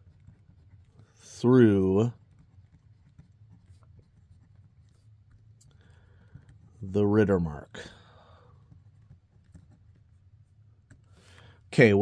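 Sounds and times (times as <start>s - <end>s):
pencil scratching on paper: 0.0s - 11.5s.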